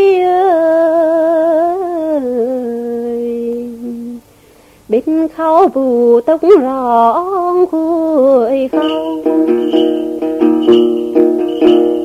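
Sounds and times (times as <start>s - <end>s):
solo folk singing: 0.0s - 4.2s, 4.9s - 12.0s.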